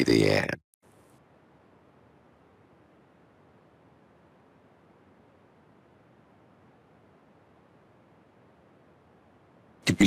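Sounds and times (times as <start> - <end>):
person speaking: 0.0 - 0.6
room tone hiss: 0.0 - 10.0.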